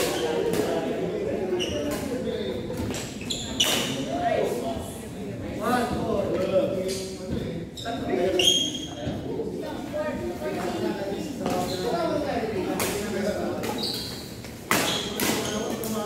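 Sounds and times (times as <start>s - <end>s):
indistinct chatter: 0.0s - 16.0s.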